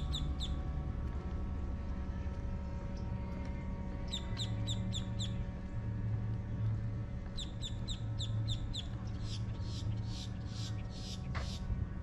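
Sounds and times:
songbird singing: 0.0 - 0.6, 4.1 - 5.4, 7.4 - 11.6
steady low rumble: 0.0 - 12.0.

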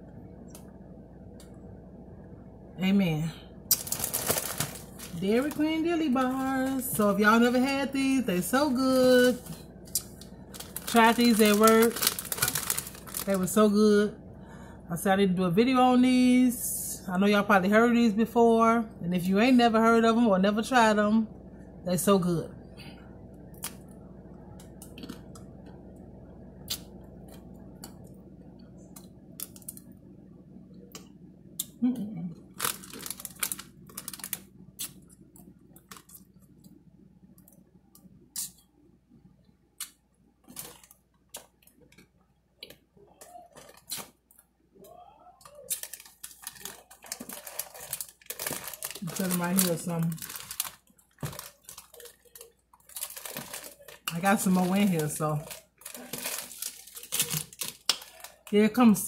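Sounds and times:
faint steady hum: 0.0 - 59.0
chocolate shell crunching: 3.7 - 5.7, 9.4 - 13.4, 32.5 - 36.2, 45.7 - 58.6
chewing ice cream bar: 45.4 - 49.3, 50.2 - 54.2.

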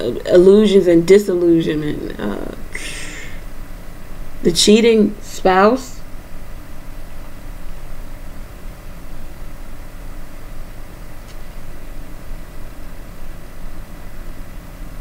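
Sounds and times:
faint hum tones: 0.0 - 15.0.

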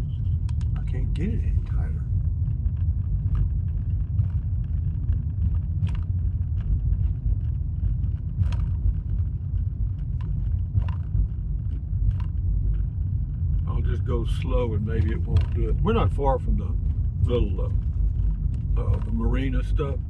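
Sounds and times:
car cabin road noise: 0.0 - 20.0.

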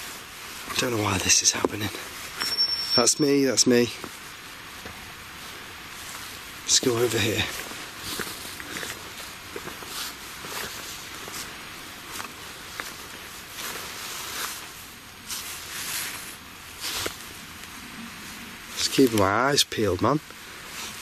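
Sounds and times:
footsteps through undergrowth: 0.0 - 21.0
leaves and stems brushing: 0.0 - 21.0
steady hiss: 0.0 - 21.0.

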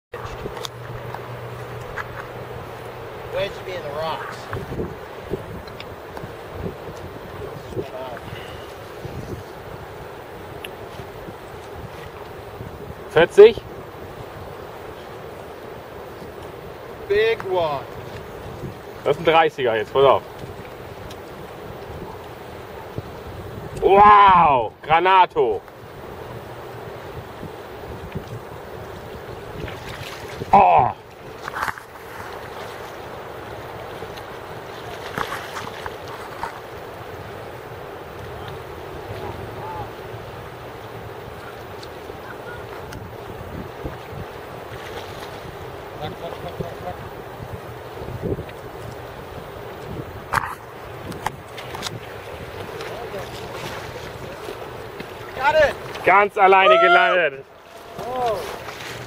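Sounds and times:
wind buffeting microphone: 0.1 - 17.0, 17.7 - 24.8, 25.8 - 36.6, 42.2 - 56.3
fast-flowing river water: 0.2 - 59.0
person shouting: 23.9 - 24.6, 56.5 - 58.6.

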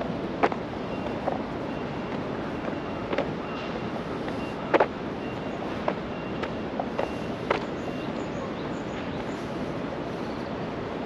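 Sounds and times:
distant city traffic: 0.0 - 11.0
wind: 0.0 - 11.0
footsteps on stone paving: 0.3 - 5.0, 5.6 - 7.7.

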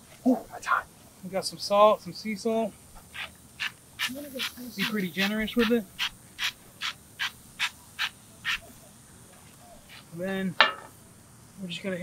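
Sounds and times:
salt shaken from a bottle: 3.1 - 8.7.

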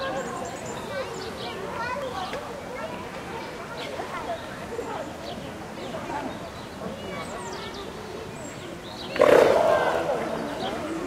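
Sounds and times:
sea lion barking: 9.2 - 10.7.

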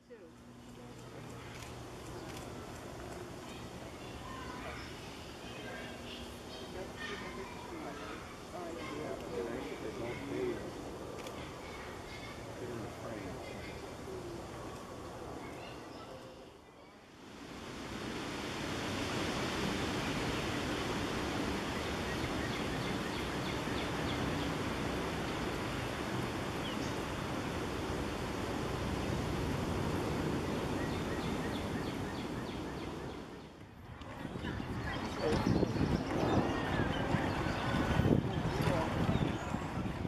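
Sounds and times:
stream water rushing: 17.2 - 33.3.

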